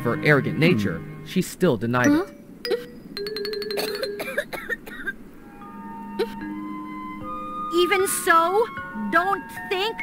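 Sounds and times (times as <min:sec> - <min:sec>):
background music: 0:00.0 - 0:10.0
woman coughing: 0:03.8 - 0:05.2.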